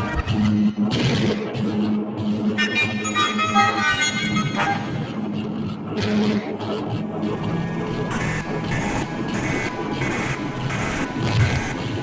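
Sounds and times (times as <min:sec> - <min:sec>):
electronic noise drone: 0:00.0 - 0:12.0.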